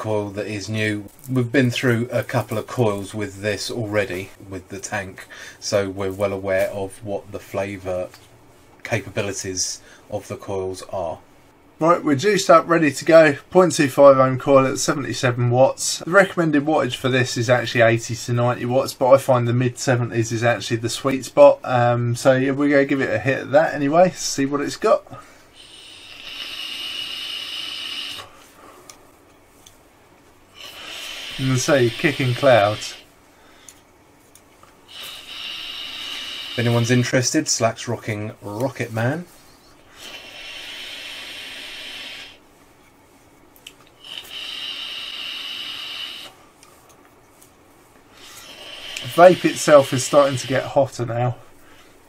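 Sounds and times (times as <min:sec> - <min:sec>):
person exhaling: 0:05.3 - 0:05.6, 0:25.1 - 0:29.0, 0:30.6 - 0:33.7, 0:34.9 - 0:36.8
airy hiss of vape draw: 0:25.6 - 0:28.6, 0:30.5 - 0:33.1, 0:34.9 - 0:37.0, 0:39.9 - 0:42.4, 0:44.0 - 0:46.4, 0:48.1 - 0:50.8.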